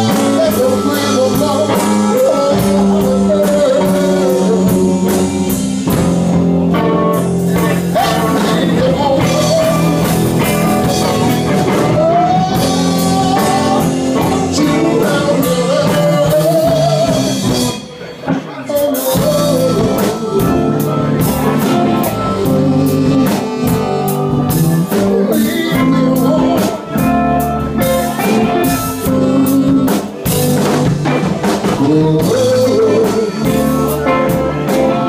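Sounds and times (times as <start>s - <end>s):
electric guitar: 0.0s - 35.0s
live band music: 0.0s - 35.0s.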